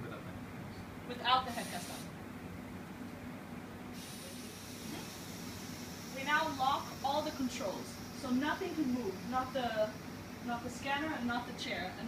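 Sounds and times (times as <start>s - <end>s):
steady low hum: 0.0s - 12.0s
faint hiss: 1.4s - 2.2s, 3.9s - 11.9s.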